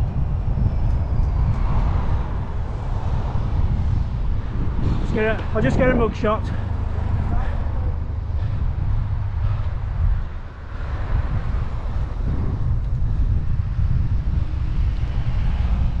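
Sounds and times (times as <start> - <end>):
road traffic: 0.0 - 16.0
wind rumbling on microphone: 0.0 - 16.0.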